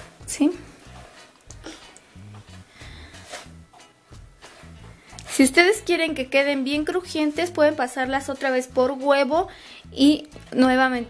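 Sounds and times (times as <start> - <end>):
scratchy rustles in breadcrumbs: 0.0 - 1.6, 2.4 - 5.9
background music with bass line: 0.0 - 11.0.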